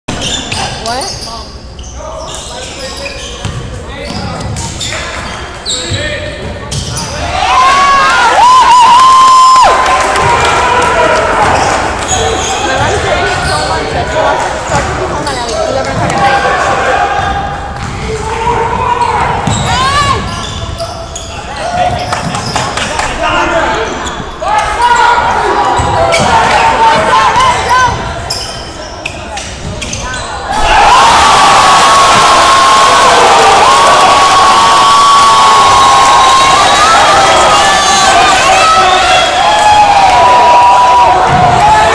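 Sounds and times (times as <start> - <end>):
shoes squeaking: 0.1 - 7.2, 25.7 - 30.6
spectators' voices: 0.1 - 41.9
crowd cheering: 7.1 - 14.6, 30.4 - 41.9.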